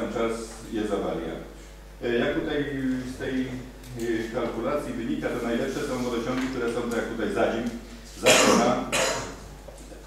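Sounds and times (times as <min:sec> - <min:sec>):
person coughing: 0:08.2 - 0:09.4.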